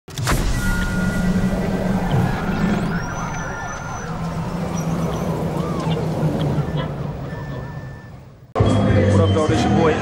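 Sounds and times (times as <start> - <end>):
music and effects: 0.1 - 10.0
sudden impact hit: 0.2 - 5.8
upward gliding tone: 0.7 - 8.5.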